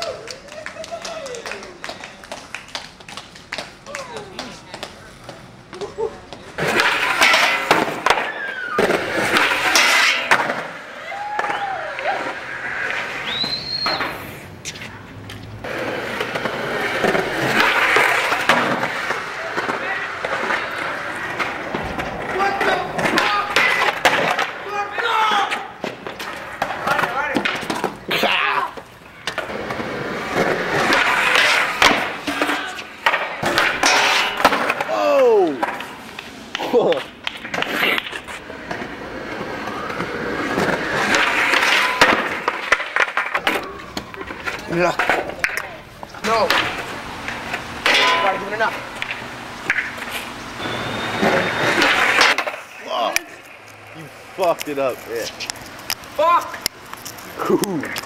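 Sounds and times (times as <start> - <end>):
skateboard wheels rolling on concrete: 0.0 - 58.0
skateboards clattering: 0.0 - 58.0
onlookers' voices: 14.7 - 33.6, 37.7 - 49.0, 51.2 - 58.0.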